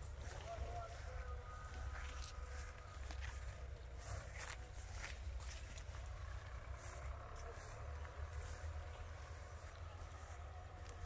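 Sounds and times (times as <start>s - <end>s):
footsteps on grass: 0.0s - 11.0s
low steady rumble: 0.0s - 11.0s.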